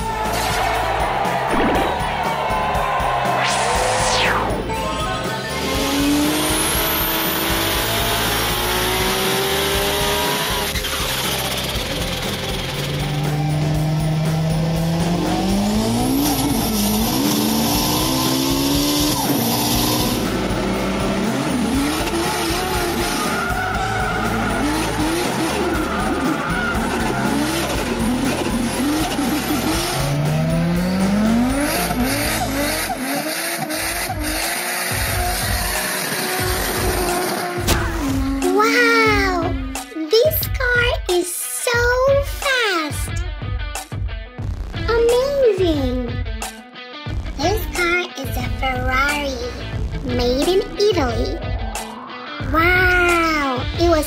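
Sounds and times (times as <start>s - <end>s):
race car engine revving: 0.2s - 39.9s
rising whoosh: 1.4s - 5.2s.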